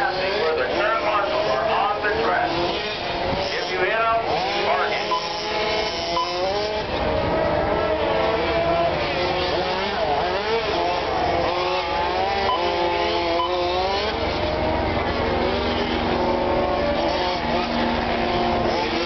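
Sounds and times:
electric motors whining: 0:00.0 - 0:19.0.

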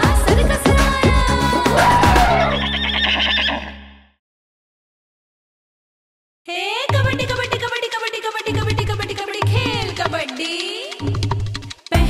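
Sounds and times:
horse whinny: 0:01.8 - 0:04.0.

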